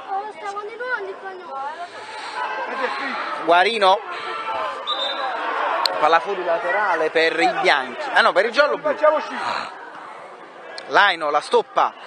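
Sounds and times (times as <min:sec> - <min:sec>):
chatter of voices: 0:00.0 - 0:12.0
thin high whistle: 0:04.8 - 0:05.4.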